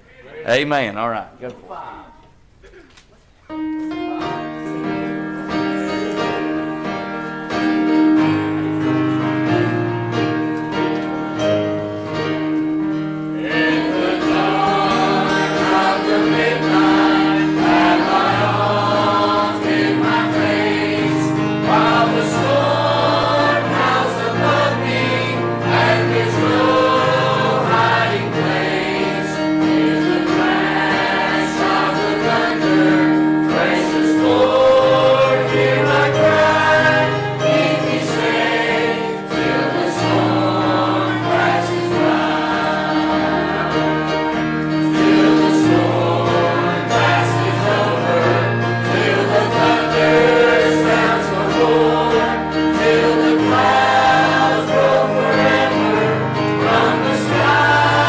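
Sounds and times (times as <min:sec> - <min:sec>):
piano: 0:03.2 - 0:58.0
choir singing a hymn: 0:04.1 - 0:58.0.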